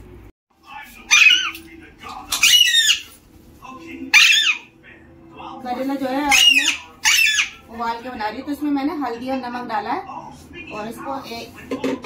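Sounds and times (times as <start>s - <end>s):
parakeet squawking: 1.0s - 1.6s, 2.3s - 3.2s, 4.1s - 4.8s, 6.1s - 7.8s.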